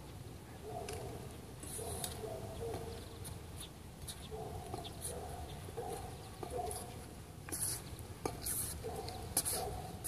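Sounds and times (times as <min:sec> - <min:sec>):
shoe scuffing tyre: 0:01.7 - 0:10.0.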